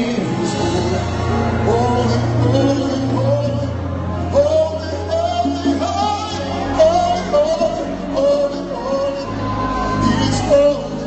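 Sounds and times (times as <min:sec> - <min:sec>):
man singing into a microphone: 0:00.0 - 0:11.0
sustained instrumental backing: 0:00.0 - 0:11.0.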